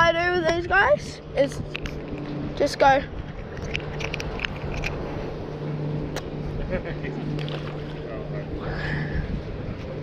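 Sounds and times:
low engine hum: 0:00.0 - 0:10.0
handling clicks and rustles: 0:03.2 - 0:05.2.

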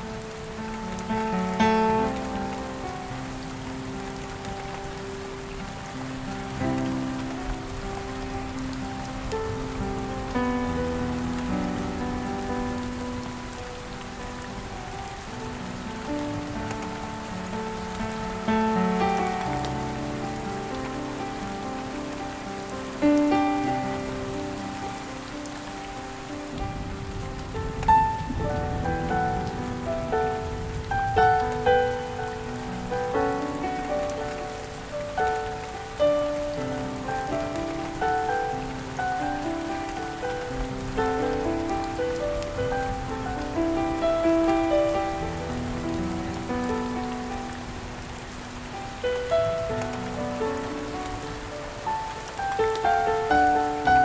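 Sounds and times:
soft slow piano music: 0:00.0 - 0:54.0
steady falling rain: 0:00.0 - 0:54.0.

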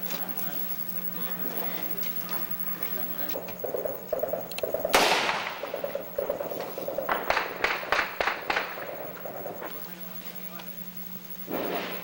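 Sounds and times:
gunshots: 0:03.6 - 0:09.7, 0:11.5 - 0:12.0.

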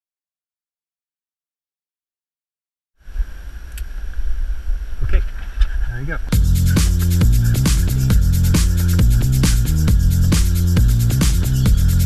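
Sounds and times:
wind rumble: 0:03.0 - 0:12.0.

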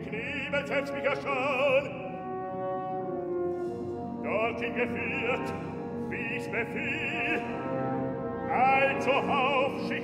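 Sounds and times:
orchestra playing sustained chords: 0:00.0 - 0:10.0.

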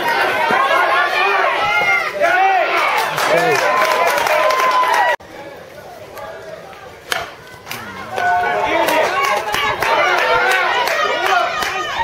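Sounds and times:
spectators shouting and cheering: 0:00.0 - 0:12.0
metal bat hitting ball: 0:07.1 - 0:07.4.

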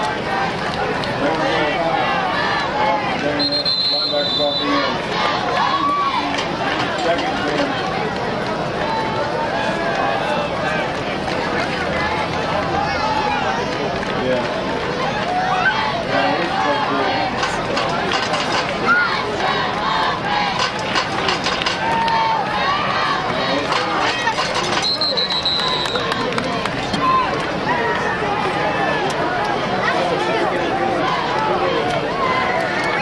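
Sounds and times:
crowd talking and shouting: 0:00.0 - 0:33.0
referee's whistle blast: 0:03.4 - 0:04.9, 0:24.8 - 0:26.1.

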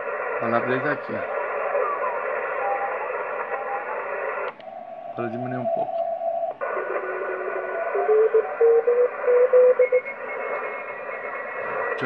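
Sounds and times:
radio band hiss: 0:00.0 - 0:12.0
morse code beeps: 0:08.0 - 0:11.4.

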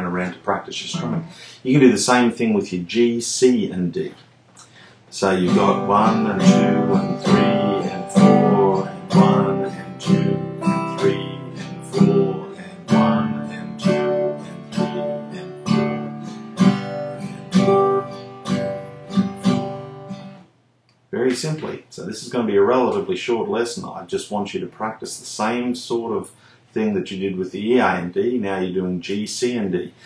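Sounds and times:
acoustic guitar strumming: 0:00.1 - 0:01.5, 0:05.3 - 0:20.4.

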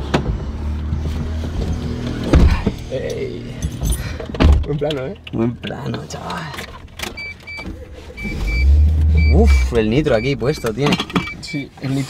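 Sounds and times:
car engine starting: 0:00.0 - 0:12.0
car warning chime beeps: 0:07.1 - 0:11.8.

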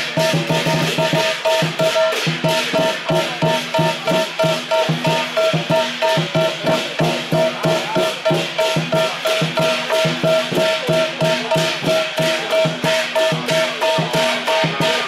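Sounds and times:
big drum beating steadily: 0:00.0 - 0:15.0
cymbals ringing: 0:00.0 - 0:15.0.

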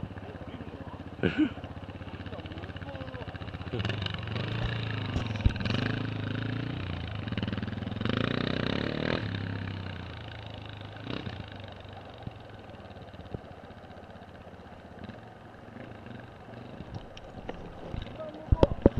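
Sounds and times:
motorcycle engine revving: 0:00.0 - 0:18.9.

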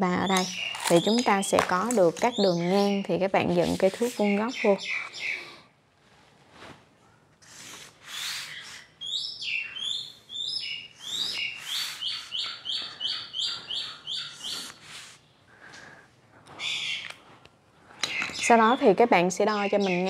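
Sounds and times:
bird chirping: 0:00.1 - 0:05.6, 0:08.1 - 0:14.8, 0:16.6 - 0:17.2, 0:18.0 - 0:20.0
marker scratching on paper: 0:02.3 - 0:04.6, 0:07.4 - 0:08.9.

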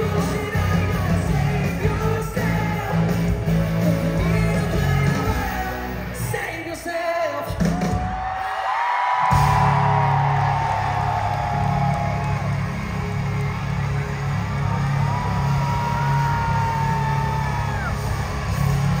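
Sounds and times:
live rock band playing loudly: 0:00.0 - 0:06.5, 0:11.5 - 0:19.0
audience whooping and yelling: 0:07.5 - 0:19.0.

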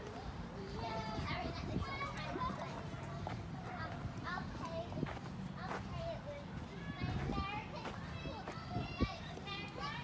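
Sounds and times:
children's chatter: 0:00.0 - 0:10.0.

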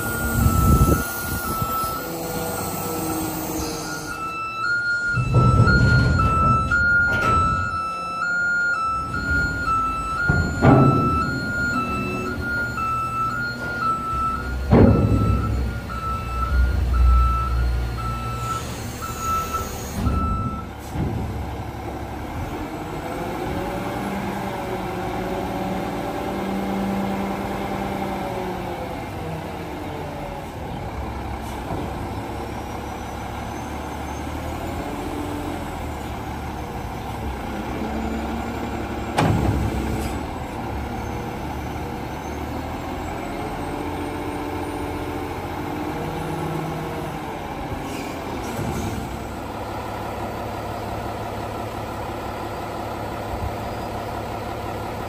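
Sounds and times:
warning beeper: 0:00.0 - 0:20.7
diesel engine revving: 0:00.0 - 0:55.0
sharp clunk: 0:05.1 - 0:07.8, 0:10.2 - 0:13.8, 0:14.6 - 0:16.2, 0:39.1 - 0:40.3.

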